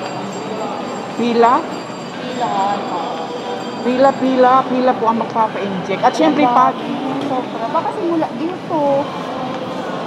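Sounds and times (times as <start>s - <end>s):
busy shopping mall background: 0.0s - 10.0s.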